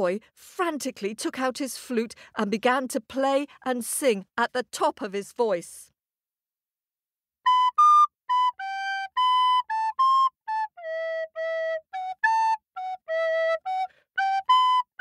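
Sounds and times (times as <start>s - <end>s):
flute playing short notes: 7.5s - 15.0s.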